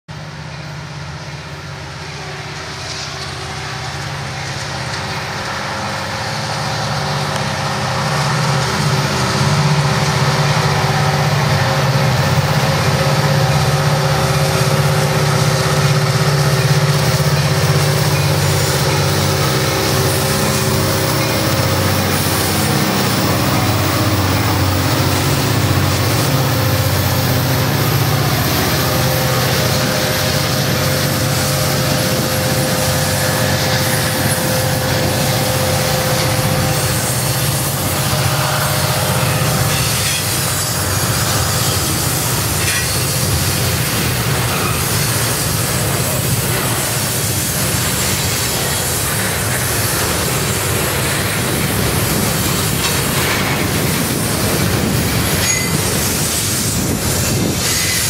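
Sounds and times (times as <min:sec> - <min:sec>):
diesel locomotives passing: 0:00.1 - 0:58.0.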